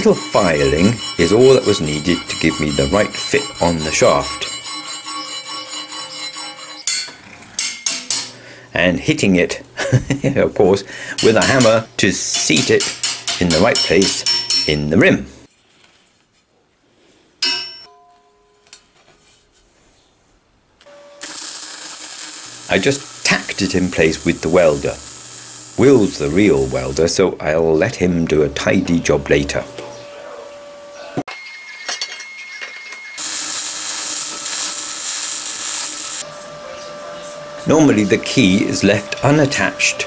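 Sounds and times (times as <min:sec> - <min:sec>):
steel ringing: 0:00.0 - 0:08.4, 0:20.9 - 0:27.1, 0:31.3 - 0:36.2
arc welder hissing: 0:21.2 - 0:27.1, 0:33.2 - 0:36.2.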